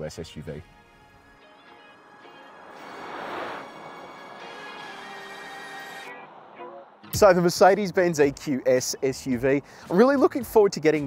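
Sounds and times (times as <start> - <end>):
background music: 0.0 - 11.0
car tyre noise passing: 1.1 - 8.3.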